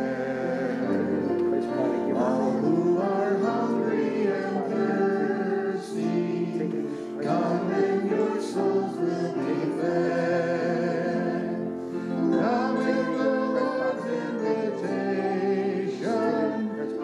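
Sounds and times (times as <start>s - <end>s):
piano accompaniment: 0.0s - 17.0s
vocal ensemble singing a hymn: 0.0s - 17.0s.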